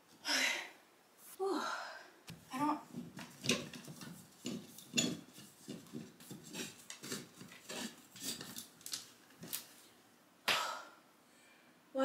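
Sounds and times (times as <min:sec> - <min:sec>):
curtain hardware clinking and scraping: 0:02.9 - 0:09.7.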